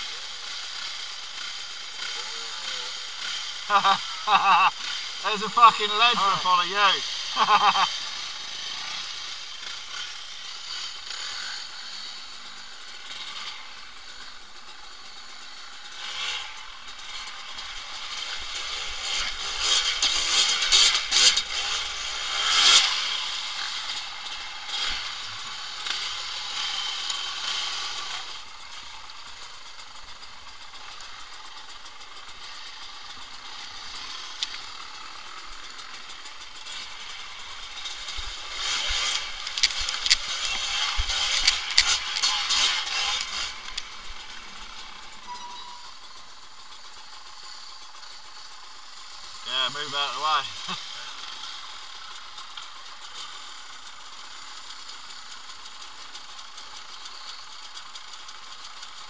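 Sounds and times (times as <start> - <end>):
trail motorcycle engine revving: 0.0 - 59.0.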